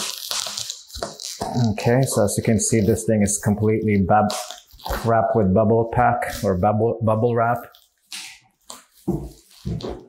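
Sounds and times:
plastic wrapping rustling: 0.0s - 6.6s, 7.2s - 10.0s.

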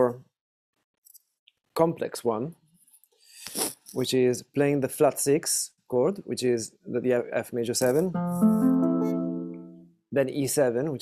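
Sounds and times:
acoustic guitar chord ringing: 8.2s - 9.9s.

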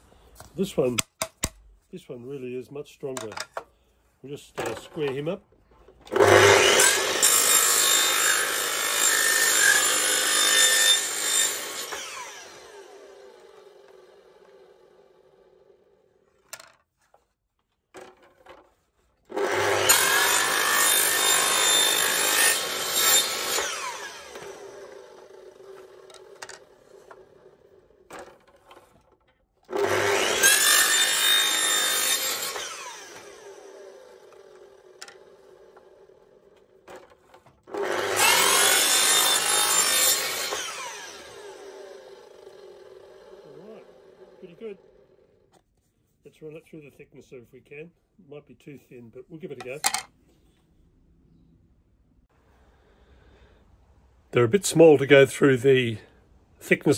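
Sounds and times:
saw blade winding down: 6.1s - 16.1s, 19.3s - 28.6s, 29.7s - 45.4s
circular saw cutting plastic: 6.1s - 16.8s, 18.0s - 45.6s.

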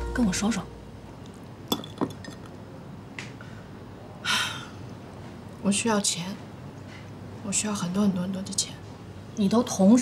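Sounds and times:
tableware clinking: 1.7s - 2.6s.

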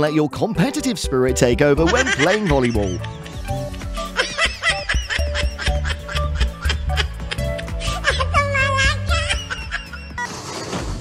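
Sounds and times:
background music with steady beat: 0.4s - 10.2s
laughter: 1.8s - 10.2s.

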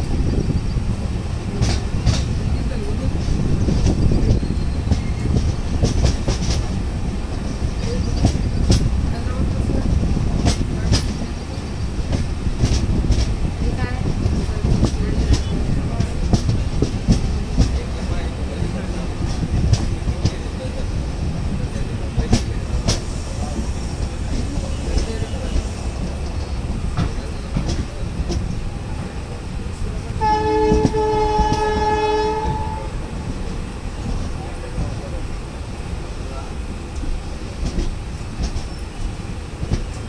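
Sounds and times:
train coach running noise: 0.0s - 40.0s
wheels clicking over rail joints: 1.4s - 35.5s
locomotive horn blast: 30.2s - 33.1s.

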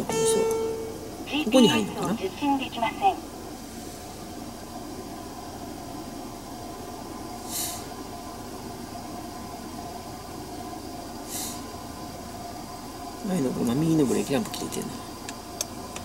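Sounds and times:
car cabin hum: 0.0s - 16.0s
short high hisses: 7.4s - 7.9s, 11.3s - 11.7s.

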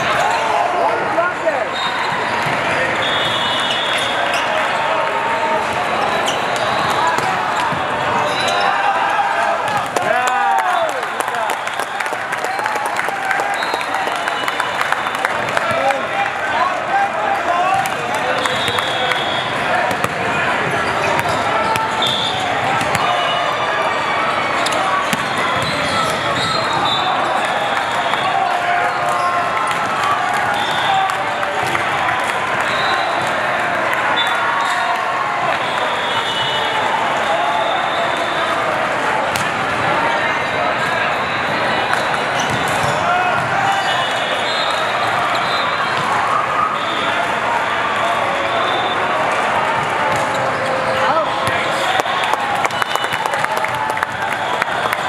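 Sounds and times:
many voices in a hall: 0.0s - 55.0s
whistle blast: 3.0s - 4.2s, 18.4s - 19.6s, 35.6s - 38.4s
volleyballs smacking and bouncing: 19.9s - 23.0s, 42.0s - 43.6s.

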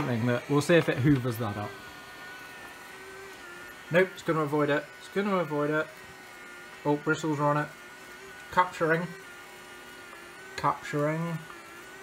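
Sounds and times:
robot vacuum motor whine: 0.0s - 12.0s.

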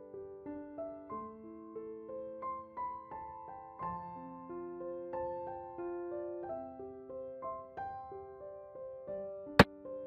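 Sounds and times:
slow piano melody: 0.0s - 10.0s.

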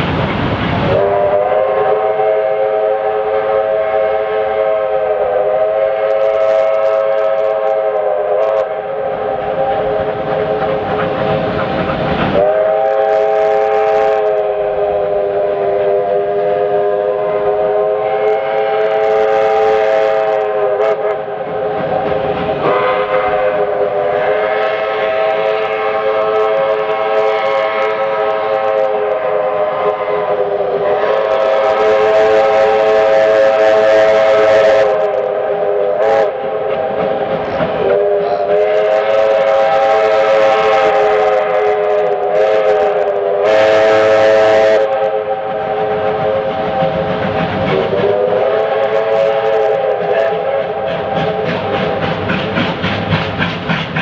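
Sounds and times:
steam locomotive whistle: 0.8s - 11.6s, 12.2s - 54.0s.

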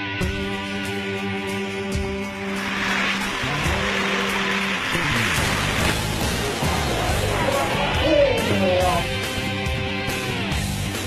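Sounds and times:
rock guitar music: 0.0s - 11.0s
wheels rolling on metal track: 2.0s - 7.8s.

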